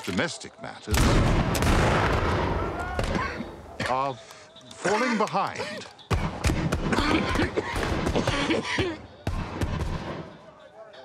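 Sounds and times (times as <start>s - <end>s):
shotgun shot with rolling echo: 0.9s - 3.2s.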